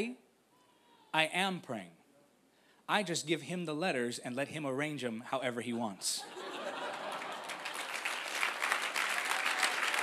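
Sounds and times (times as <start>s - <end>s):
audience applauding: 6.8s - 10.0s.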